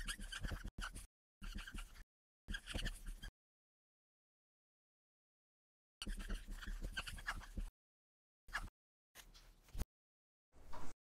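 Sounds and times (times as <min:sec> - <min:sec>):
marker squeaking on whiteboard: 0:00.0 - 0:03.3, 0:06.0 - 0:07.7, 0:08.5 - 0:09.5.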